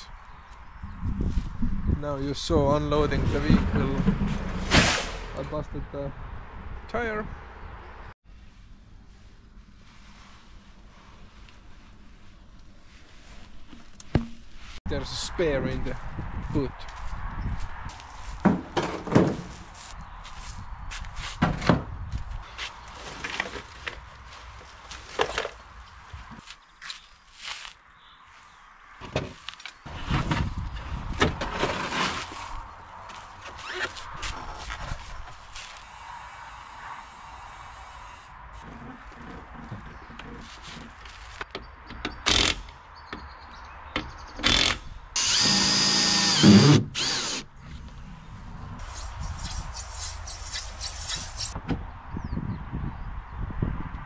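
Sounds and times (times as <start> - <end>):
cordless drill whirring: 44.5 - 47.4.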